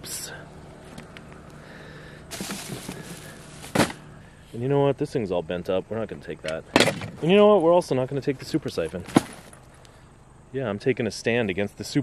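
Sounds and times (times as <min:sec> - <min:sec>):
junk rustling with small knocks: 0:02.3 - 0:04.2, 0:06.4 - 0:07.6, 0:08.4 - 0:10.0.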